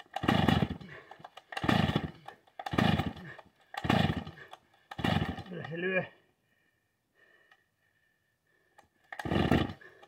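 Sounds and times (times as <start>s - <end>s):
chainsaw pull-start attempts: 0.0s - 6.0s, 8.8s - 10.0s.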